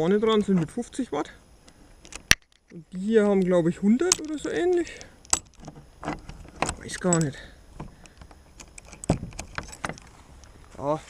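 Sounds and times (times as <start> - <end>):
person speaking: 0.0 - 1.4, 2.7 - 5.2, 6.7 - 7.6, 10.7 - 11.0
sharp clicks and knocks: 2.0 - 10.1.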